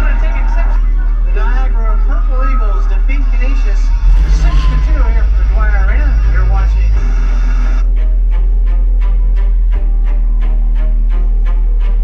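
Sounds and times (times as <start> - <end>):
television voices: 0.0 - 7.9
steady low hum: 1.0 - 10.1
music with steady beat: 3.2 - 12.0.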